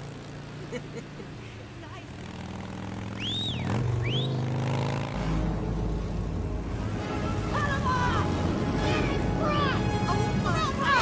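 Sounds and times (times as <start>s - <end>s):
motorcycle engines droning: 0.0s - 11.0s.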